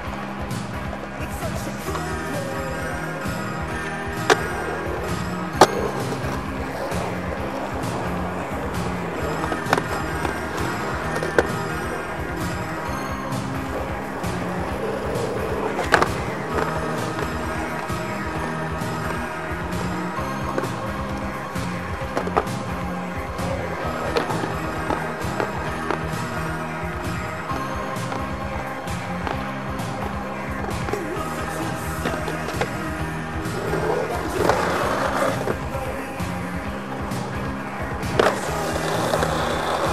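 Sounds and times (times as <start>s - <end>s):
music with steady beat: 0.0s - 39.9s
skateboard trucks clacking on curb: 0.0s - 39.9s
skateboard wheels rolling on asphalt: 0.0s - 39.9s.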